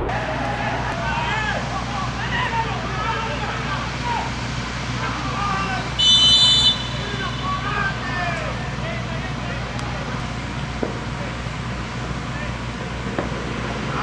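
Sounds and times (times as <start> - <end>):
scattered shouting voices: 0.0 - 10.3
referee's whistle blast: 6.0 - 7.9.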